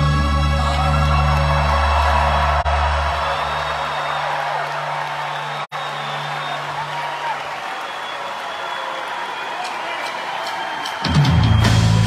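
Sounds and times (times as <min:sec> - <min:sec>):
crowd cheering and whooping: 0:00.0 - 0:12.0
rock band low notes: 0:11.1 - 0:12.0.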